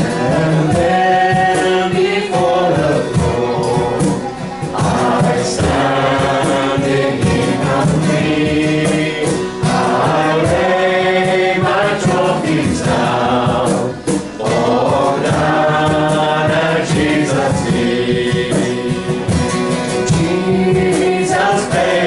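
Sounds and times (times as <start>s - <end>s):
acoustic guitar: 0.0s - 22.0s
people singing a hymn: 0.0s - 22.0s.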